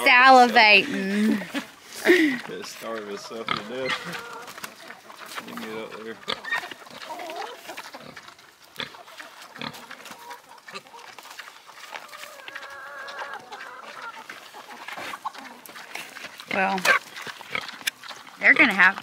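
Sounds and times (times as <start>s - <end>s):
pigs grunting while eating: 0.0s - 19.0s.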